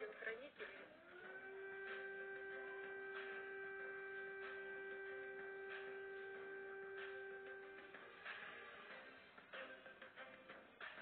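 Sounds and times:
air-raid siren: 0:01.0 - 0:08.0.

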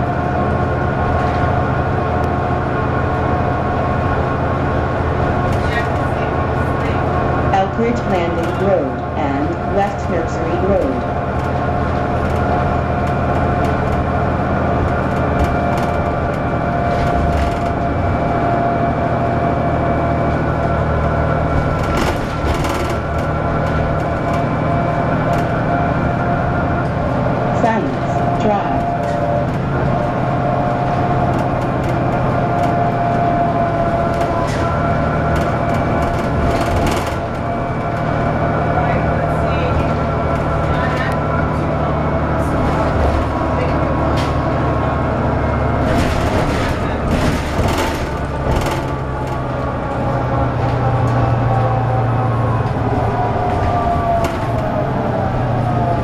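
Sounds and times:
bus engine low drone: 0:00.0 - 0:56.0
high transmission whine: 0:00.0 - 0:56.0.

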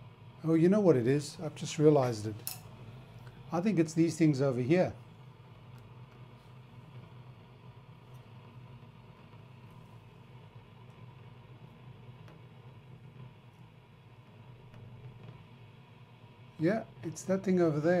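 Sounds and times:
radio speaker hum and hiss: 0:00.0 - 0:18.0.

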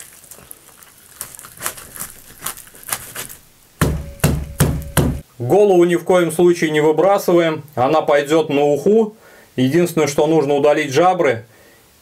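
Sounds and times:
knife crunching through fish: 0:00.0 - 0:03.5
knife thumping on wooden board: 0:03.8 - 0:05.2.

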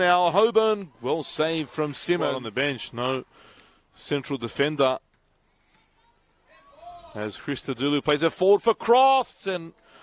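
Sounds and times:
faint outdoor ambience: 0:00.0 - 0:10.0.

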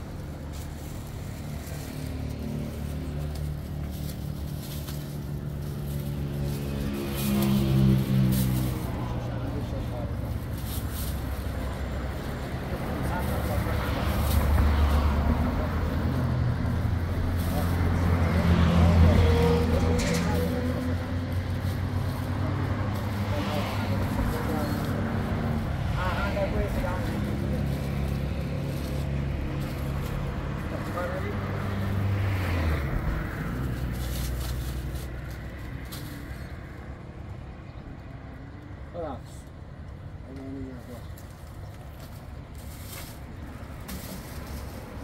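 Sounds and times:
plastic bags rustling: 0:00.0 - 0:36.6, 0:40.9 - 0:45.0
vehicle engine humming: 0:00.0 - 0:45.0
people talking: 0:08.7 - 0:10.5, 0:12.5 - 0:16.2, 0:17.2 - 0:20.9, 0:22.4 - 0:27.9, 0:30.1 - 0:31.5, 0:40.3 - 0:41.2.

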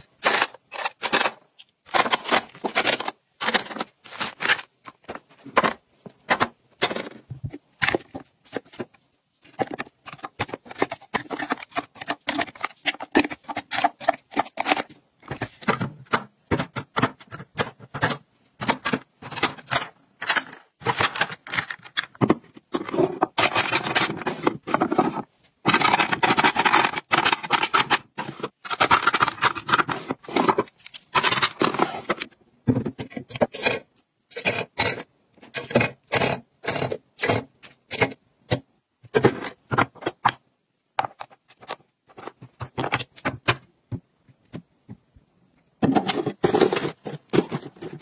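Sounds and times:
plastic cases clicking and clacking: 0:00.0 - 0:45.1, 0:45.8 - 0:48.0
hard plastic scraping: 0:00.1 - 0:40.4, 0:45.8 - 0:48.0.

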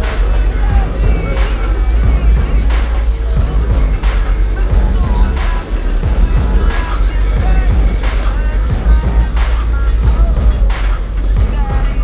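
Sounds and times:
bass-heavy music on car stereo: 0:00.0 - 0:12.0.

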